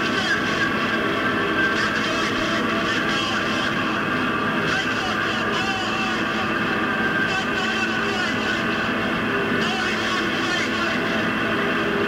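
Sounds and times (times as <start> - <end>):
distorted noise drone: 0.0 - 12.0.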